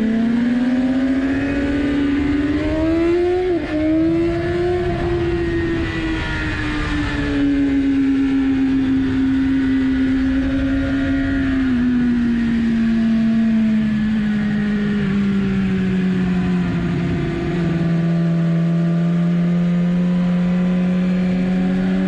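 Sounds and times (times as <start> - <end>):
wind noise: 0.0 - 18.3
motorcycle engine revving: 0.0 - 22.0.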